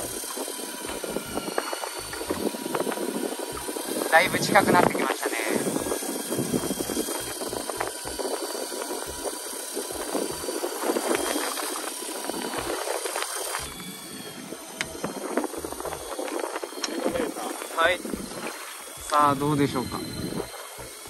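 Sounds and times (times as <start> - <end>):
fishing reel motor whine: 0.0 - 21.0
sea noise: 0.0 - 21.0
wind buffeting: 0.0 - 21.0.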